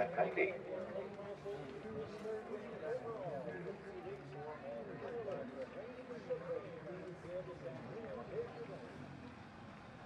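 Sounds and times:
faint background voices talking: 0.0s - 10.0s.

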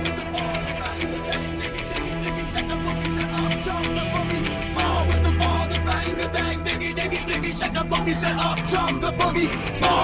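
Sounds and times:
electric guitar: 0.0s - 10.0s
heavy bass: 0.0s - 10.0s.

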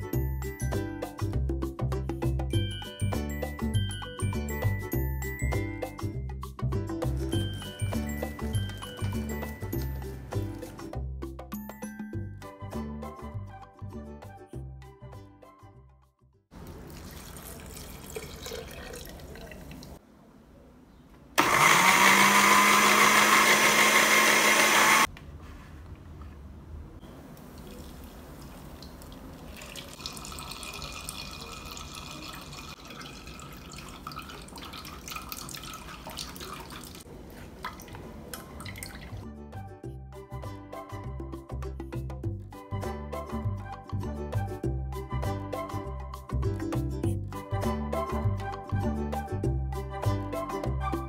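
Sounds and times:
thick liquid pouring through strainer: 16.7s - 19.9s, 27.6s - 37.0s
blender motor running: 21.4s - 25.1s.

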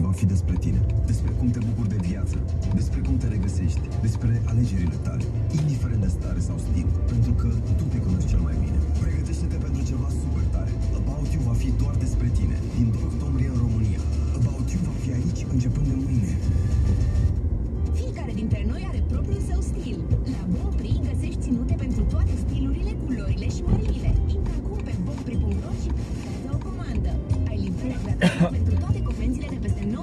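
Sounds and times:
car engine and tyres rumbling: 0.0s - 30.0s
car radio music with voice: 0.0s - 30.0s.

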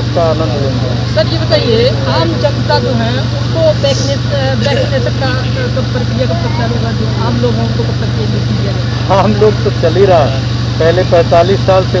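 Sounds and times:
faint voices chattering: 0.0s - 12.0s
low machine hum: 0.0s - 12.0s.

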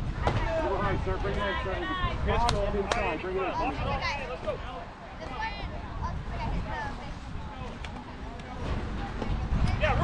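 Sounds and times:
shouts and chatter: 0.0s - 10.0s.

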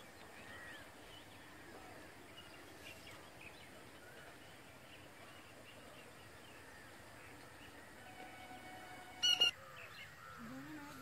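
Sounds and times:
bird honking calls: 8.0s - 10.5s.

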